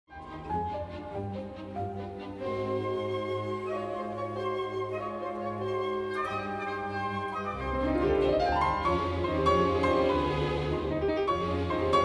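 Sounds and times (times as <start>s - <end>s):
orchestral classical music: 0.1s - 12.0s.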